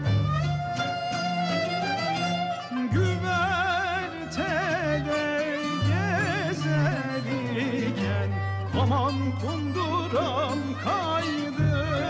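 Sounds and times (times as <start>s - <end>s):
strings playing wavering melody: 0.0s - 12.0s.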